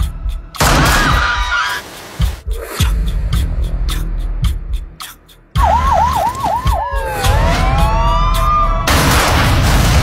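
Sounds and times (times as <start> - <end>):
siren wailing: 5.6 - 8.9.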